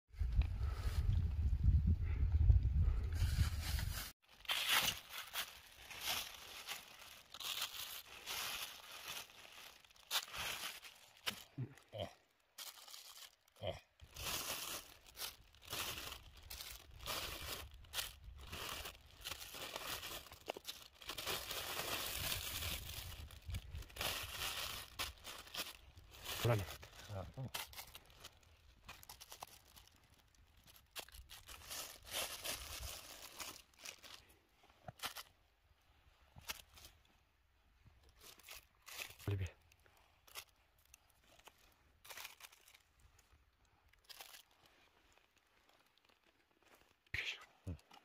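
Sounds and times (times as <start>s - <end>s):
wind buffeting microphone: 0.1s - 4.1s
plastic sheeting crinkling: 3.6s - 11.8s, 12.5s - 34.3s, 38.0s - 47.1s.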